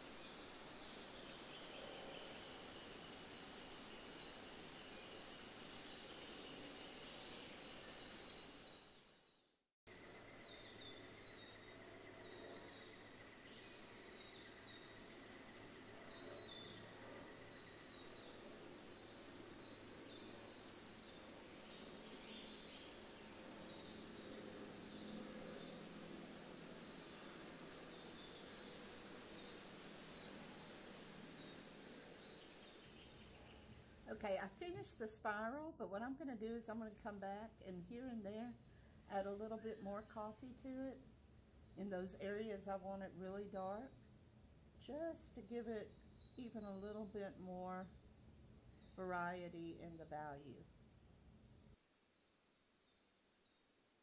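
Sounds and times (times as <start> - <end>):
small birds chirping: 0.0 - 35.4, 36.3 - 53.8.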